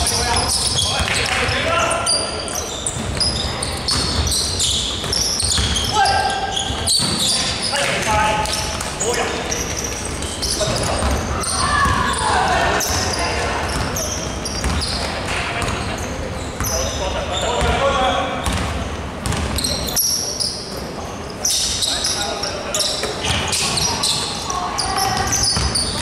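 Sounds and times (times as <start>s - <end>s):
players' voices: 0.0s - 26.0s
sneakers squeaking: 0.0s - 26.0s.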